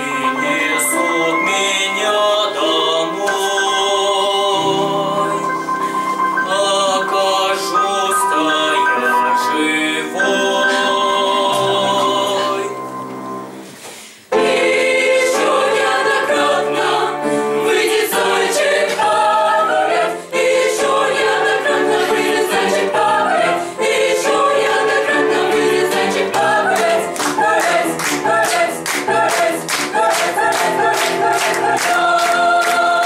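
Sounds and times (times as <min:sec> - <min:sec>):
mixed choir singing unaccompanied: 0:00.0 - 0:12.8, 0:14.3 - 0:33.0.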